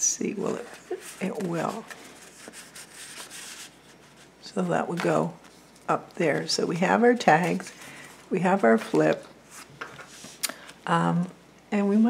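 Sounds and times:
paper rustling and scraping: 0.5 - 5.8.

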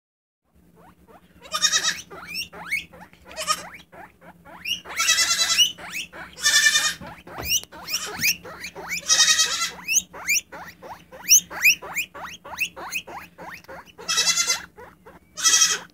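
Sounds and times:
guinea pig squeaking: 0.5 - 15.9
baby goat bleating: 1.4 - 15.9.

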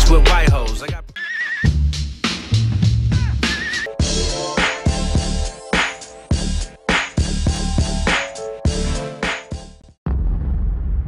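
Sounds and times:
rap vocals: 0.0 - 1.2.

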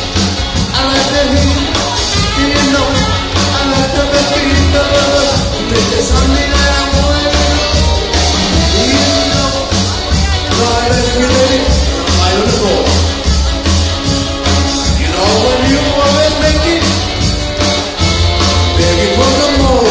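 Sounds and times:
saxophone melody: 0.0 - 19.7
drums beat: 0.0 - 19.9
electric guitar: 0.0 - 19.9
upright bass: 0.0 - 19.9.

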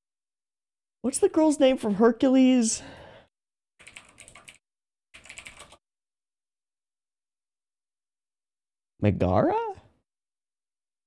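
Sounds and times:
typing on computer keyboard: 3.8 - 4.6, 5.2 - 5.8.

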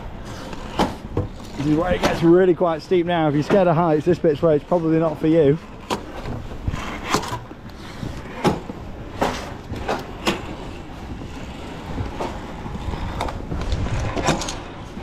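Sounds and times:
footsteps on wooden rungs: 0.0 - 15.0.

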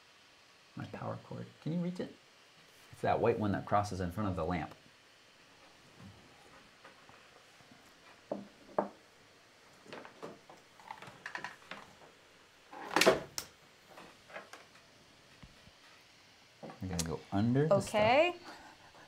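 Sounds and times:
knocks on a desk: 8.3 - 9.0.

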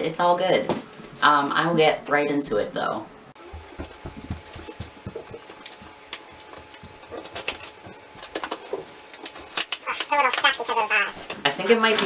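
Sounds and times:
cardboard box rustling and scraping: 3.5 - 9.5.

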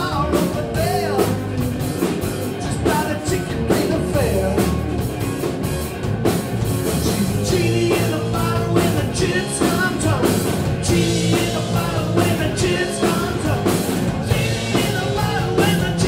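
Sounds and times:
bass guitar: 0.0 - 16.0
drum kit beat: 0.0 - 16.0
electric guitars: 0.0 - 16.0.

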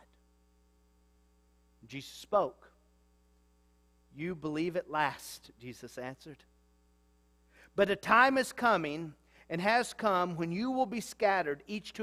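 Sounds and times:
electrical mains hum: 0.0 - 12.0
man's voice: 1.8 - 2.7, 4.2 - 6.4, 7.8 - 12.0.

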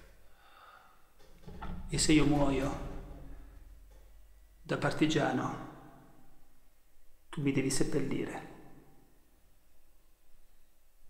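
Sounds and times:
man breathing in: 0.2 - 1.2
man speaking: 1.9 - 3.2, 4.7 - 5.7, 7.4 - 8.6.

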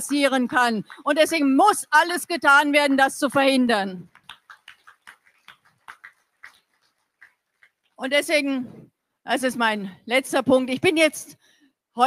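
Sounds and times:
audience clapping sparsely: 4.0 - 8.0.

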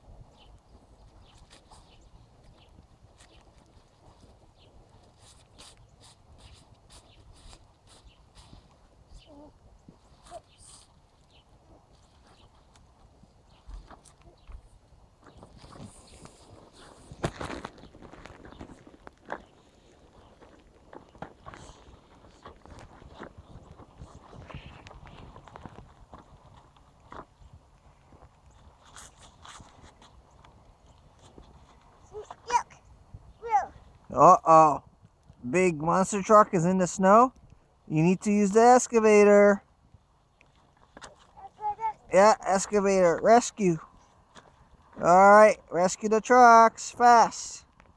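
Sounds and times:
child's short vocal sound: 33.4 - 33.8, 41.4 - 42.1.

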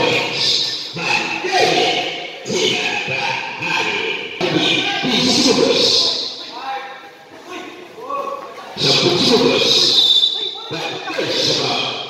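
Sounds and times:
crowd noise: 0.0 - 12.0
echoing voices and shouts: 0.0 - 12.0.

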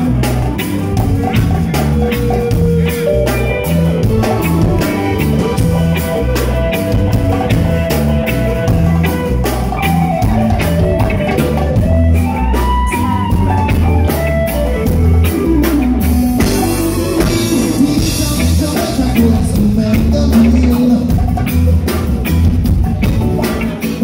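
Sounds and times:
deep bass line: 0.0 - 24.0
drum kit: 0.0 - 24.0
electric guitar: 0.0 - 24.0.

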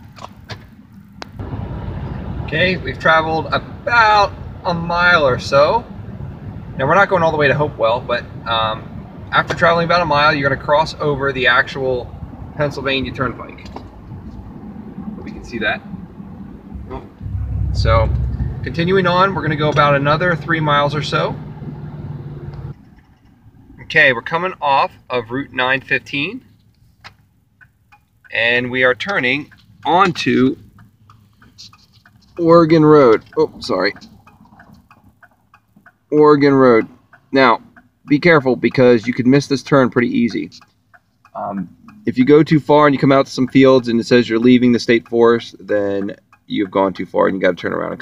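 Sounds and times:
engine and tyre rumble: 0.0 - 48.0.

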